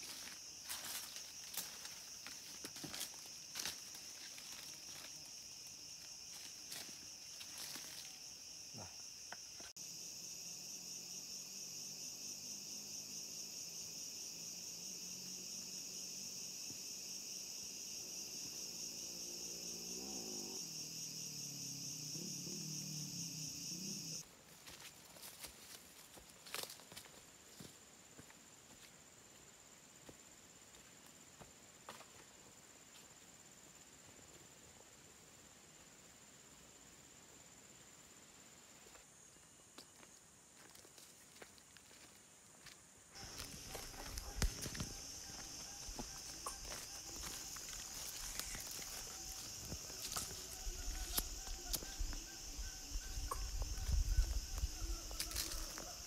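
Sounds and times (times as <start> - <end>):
footsteps on dirt trail: 0.0 - 8.2, 24.5 - 28.9, 39.8 - 52.2
high insect drone: 0.0 - 56.0.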